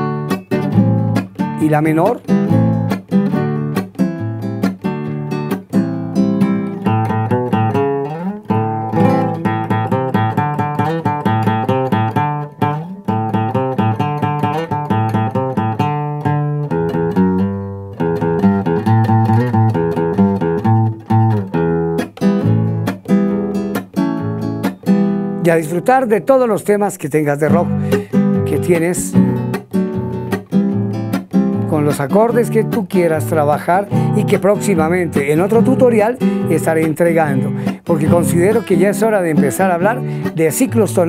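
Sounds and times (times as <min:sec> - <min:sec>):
classical guitar strummed: 0:00.0 - 0:41.0.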